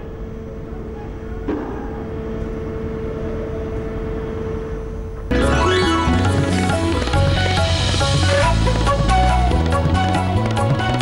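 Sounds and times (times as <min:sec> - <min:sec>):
constant whine: 0:00.0 - 0:11.0.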